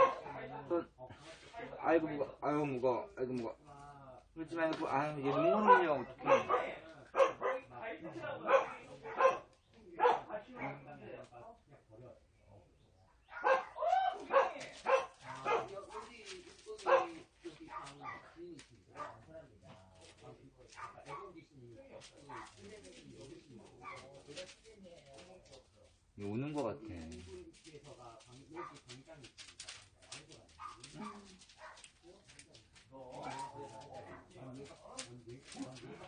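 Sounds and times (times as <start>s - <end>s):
dogs barking: 0.0s - 0.5s, 5.3s - 10.9s, 13.2s - 16.2s, 16.8s - 19.3s, 20.7s - 21.4s, 23.8s - 24.2s, 30.5s - 32.0s, 33.2s - 34.4s.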